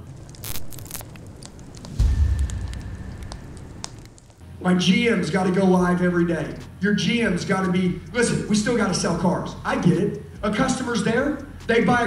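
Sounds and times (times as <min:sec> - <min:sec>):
scattered crackles: 0:00.0 - 0:04.5
deep boom: 0:01.8 - 0:04.3
sharp hits: 0:01.8 - 0:04.4.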